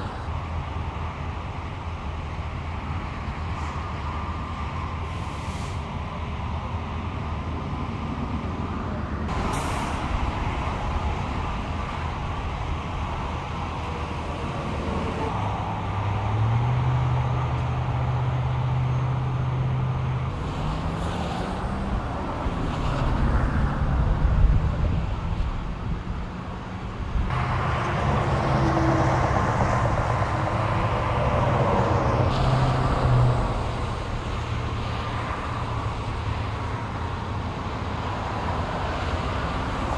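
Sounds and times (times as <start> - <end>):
road noise: 0.0 - 39.9
truck diesel engines running: 0.0 - 39.9.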